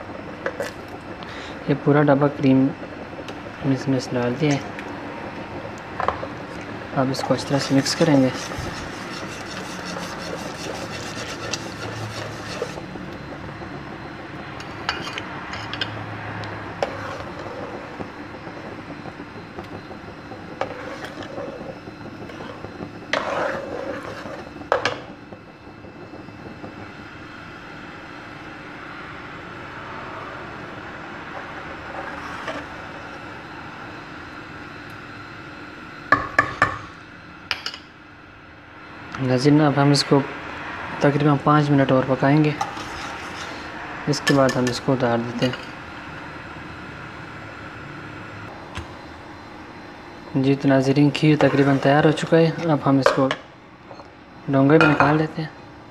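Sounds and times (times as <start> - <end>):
metal ladle scraping pot: 7.5 - 12.9, 14.6 - 15.9, 16.8 - 17.7, 20.6 - 21.7, 22.3 - 25.0, 42.6 - 44.8, 51.4 - 52.7.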